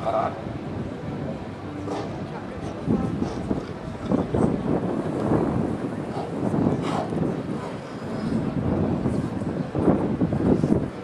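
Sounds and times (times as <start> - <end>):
outdoor street background noise: 0.0 - 11.0
wind rumbling on microphone: 0.0 - 11.0.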